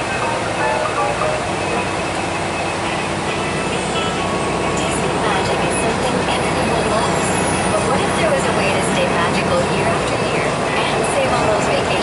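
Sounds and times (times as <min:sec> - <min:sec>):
bus engine and road noise: 0:00.0 - 0:12.0
faint passenger voices: 0:00.0 - 0:12.0.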